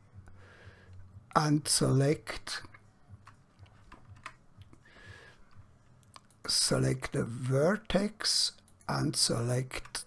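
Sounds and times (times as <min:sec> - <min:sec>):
keyboard and mouse clicks: 0:02.7 - 0:04.8.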